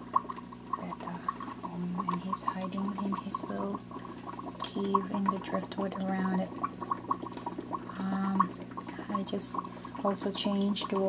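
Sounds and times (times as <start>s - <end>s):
aquarium filter water trickling: 0.0s - 11.0s.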